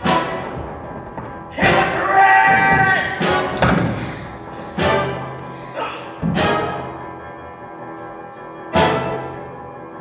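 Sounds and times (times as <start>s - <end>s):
heavy accented orchestral hits: 0.0s - 7.4s
theatre orchestra playing dramatic music: 0.0s - 10.0s
loud held orchestral chord: 1.5s - 10.0s.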